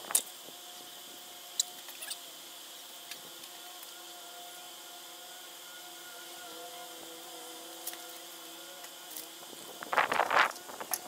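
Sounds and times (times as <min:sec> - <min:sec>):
outdoor hiss: 0:00.0 - 0:11.0.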